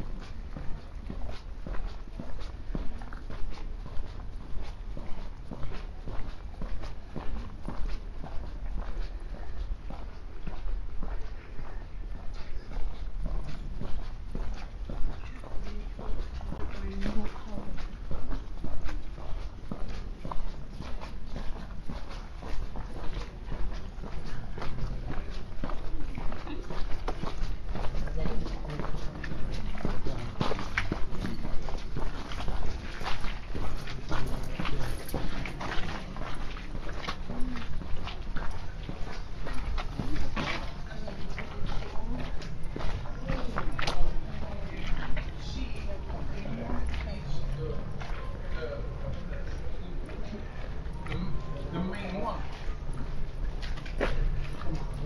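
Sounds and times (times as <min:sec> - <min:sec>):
footsteps: 0:00.0 - 0:55.0
people talking: 0:16.6 - 0:17.8, 0:27.9 - 0:30.5, 0:33.8 - 0:36.3, 0:40.0 - 0:53.1.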